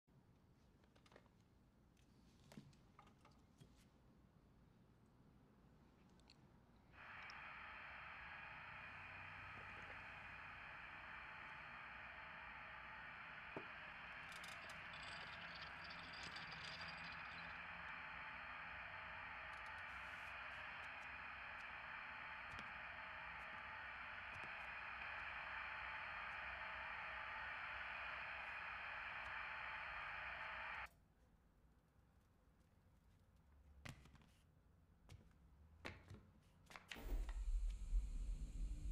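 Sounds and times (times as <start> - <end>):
faint clicks: 7.0 - 30.9
television static hiss: 7.0 - 30.9.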